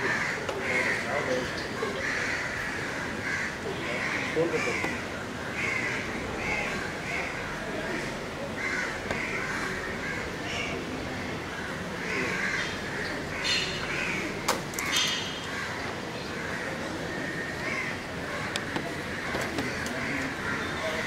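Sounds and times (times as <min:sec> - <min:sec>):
crows cawing: 0:00.0 - 0:10.8, 0:11.5 - 0:21.0.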